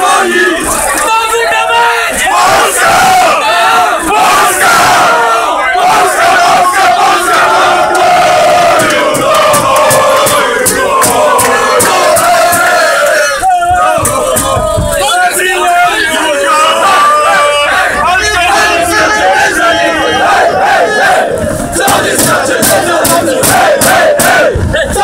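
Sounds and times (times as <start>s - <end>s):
crowd chanting and shouting: 0.0s - 25.0s.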